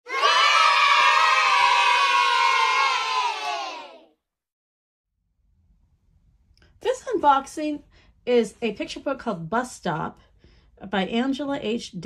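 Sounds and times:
children shouting and cheering: 0.0s - 4.1s.

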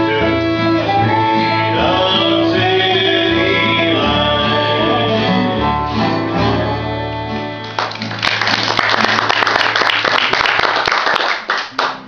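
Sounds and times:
audience clapping: 7.6s - 12.0s.

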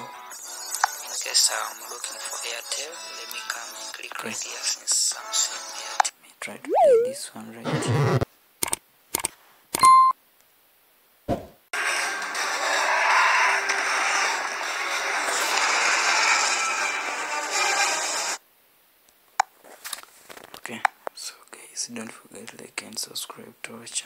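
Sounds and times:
short beep: 6.7s - 7.2s.

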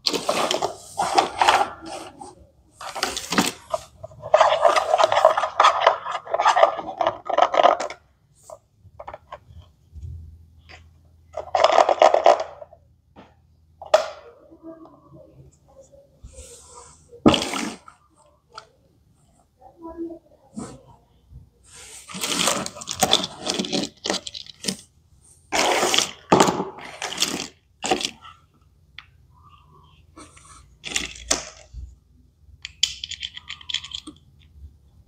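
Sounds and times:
plastic toy pieces clattering: 2.8s - 8.0s, 11.4s - 12.8s, 22.0s - 24.8s, 25.5s - 28.2s, 30.8s - 31.7s, 32.6s - 34.6s.

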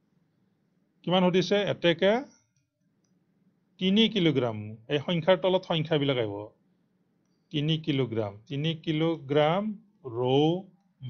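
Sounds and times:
man speaking: 1.0s - 2.3s, 3.8s - 6.5s, 7.5s - 10.7s.

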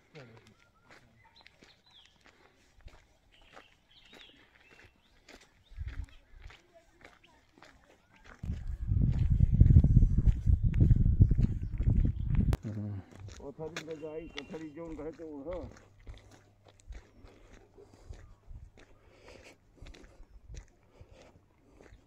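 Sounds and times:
quiet footsteps: 0.0s - 22.0s
wind rumble on microphone: 8.4s - 12.6s.

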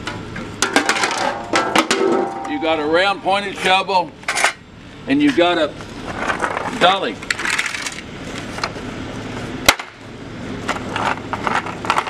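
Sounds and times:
plastic dolly casters rolling on concrete: 0.1s - 4.6s, 5.2s - 8.8s, 10.6s - 12.0s.

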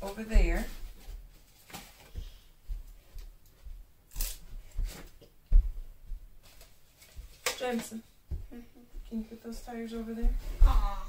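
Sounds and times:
paper plates rustling and tapping: 0.0s - 2.4s, 6.4s - 8.0s.

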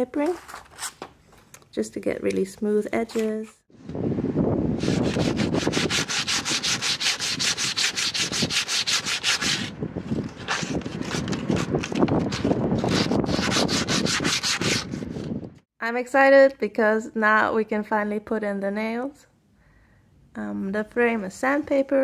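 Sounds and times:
sandpaper rubbing on wood: 4.8s - 9.7s, 12.4s - 15.1s.

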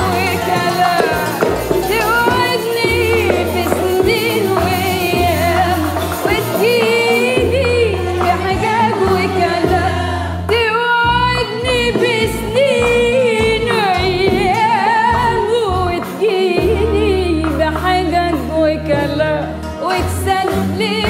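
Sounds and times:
low instrumental notes: 0.0s - 19.6s
woman singing: 0.0s - 21.0s.

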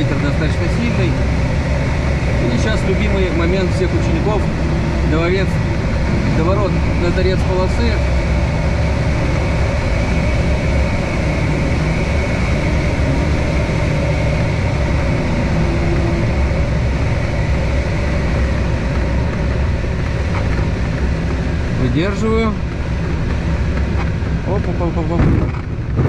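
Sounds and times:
airflow rushing over glider: 0.0s - 26.0s.

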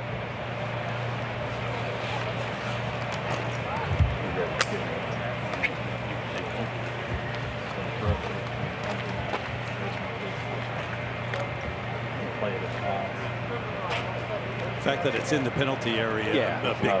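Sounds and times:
distant people talking: 0.0s - 17.0s
outdoor background noise: 0.0s - 17.0s.

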